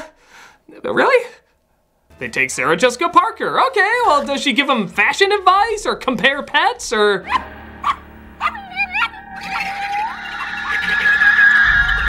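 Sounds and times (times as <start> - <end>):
film music with high tone: 2.1 - 12.0
short gliding yelps: 7.2 - 12.0.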